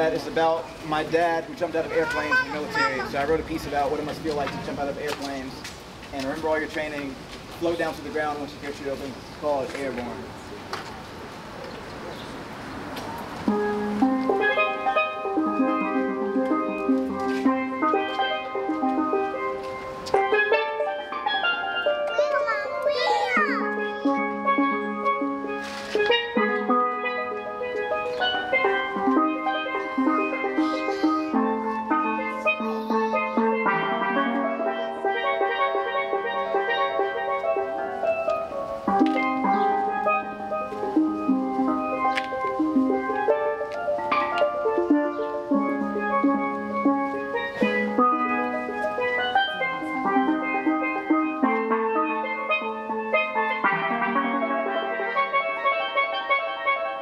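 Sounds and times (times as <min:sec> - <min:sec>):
steel pans played with mallets: 0:13.3 - 0:57.0.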